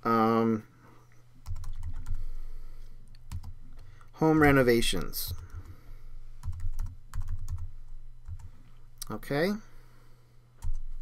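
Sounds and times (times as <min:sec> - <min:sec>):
faint low hum: 0:00.0 - 0:11.0
keyboard typing: 0:01.4 - 0:02.3, 0:03.3 - 0:03.6, 0:06.4 - 0:08.6, 0:10.6 - 0:11.0.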